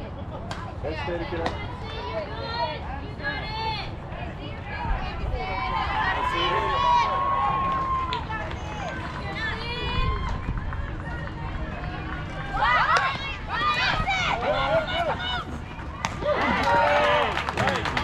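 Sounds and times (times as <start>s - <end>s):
young players calling and chanting: 0.0s - 16.9s.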